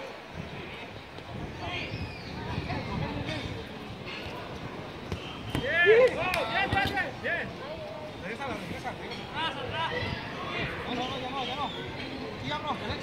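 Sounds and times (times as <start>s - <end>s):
players shouting: 5.1s - 7.7s.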